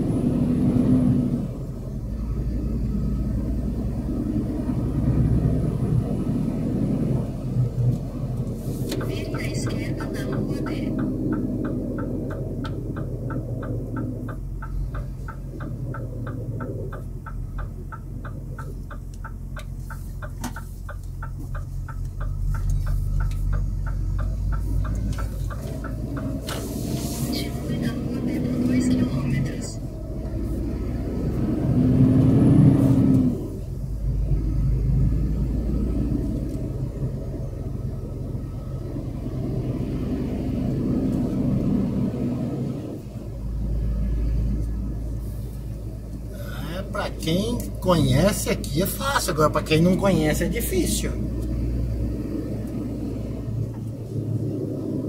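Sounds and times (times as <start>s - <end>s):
truck diesel engine running: 0.0s - 55.0s.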